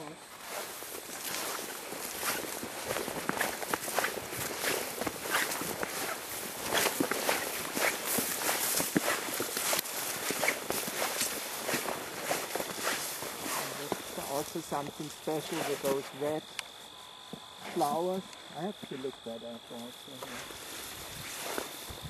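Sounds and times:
footsteps through tall grass: 0.0 - 22.0
fabric rustling: 2.4 - 9.6.

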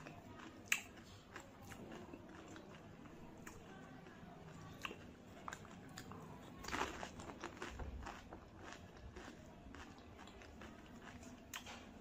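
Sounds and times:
wet chewing: 0.0 - 12.0
crisp shell crunching: 6.0 - 9.8.

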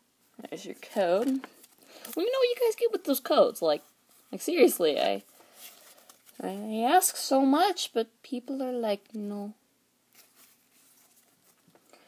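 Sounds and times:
trading cards rustling: 0.6 - 3.0, 4.6 - 6.9, 10.1 - 11.9.

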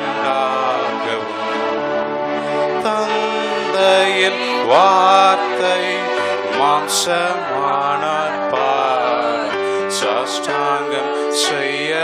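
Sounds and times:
people singing a carol through microphones: 0.0 - 12.0.

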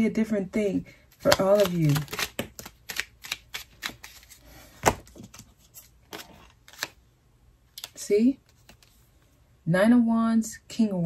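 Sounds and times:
cards being shuffled: 1.1 - 7.0, 7.7 - 9.1.

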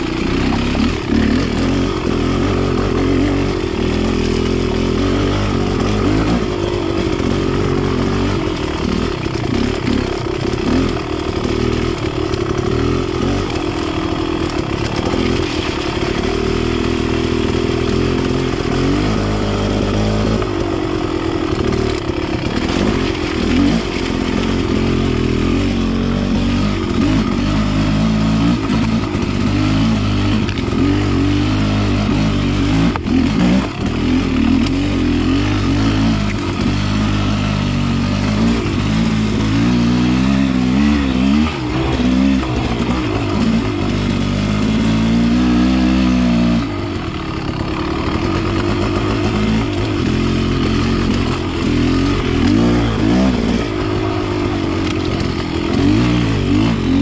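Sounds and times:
dirt bike engine revving: 0.0 - 57.0.

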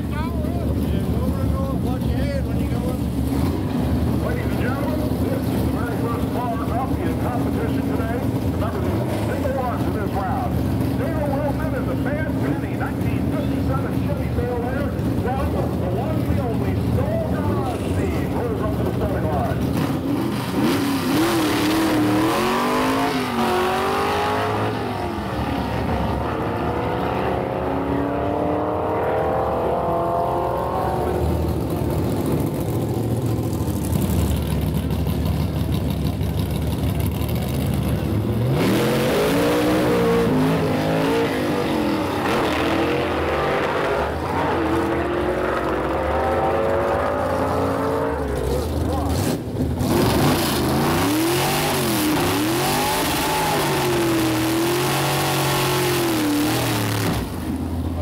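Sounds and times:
engines revving up and down: 0.0 - 36.0, 37.0 - 58.0
drag car engines at full throttle: 0.0 - 58.0.

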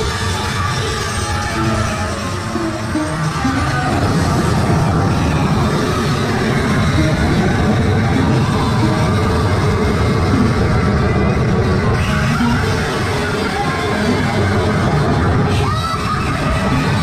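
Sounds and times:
loud bass-driven music: 0.0 - 17.0.

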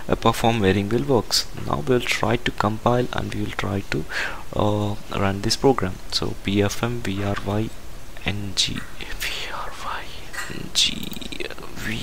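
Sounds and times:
man speaking softly: 0.1 - 12.0.

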